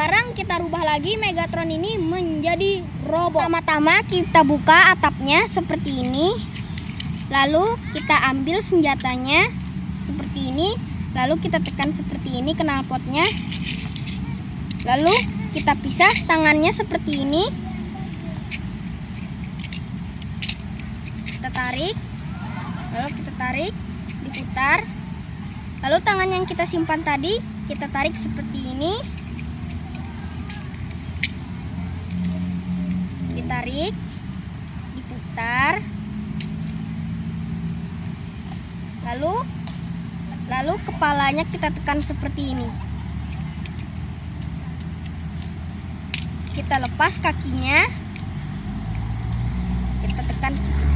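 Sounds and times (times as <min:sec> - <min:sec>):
plastic toy joints clicking: 0:05.4 - 0:10.1, 0:11.2 - 0:21.9, 0:24.0 - 0:24.6, 0:25.7 - 0:35.2, 0:36.3 - 0:37.0, 0:43.1 - 0:50.9.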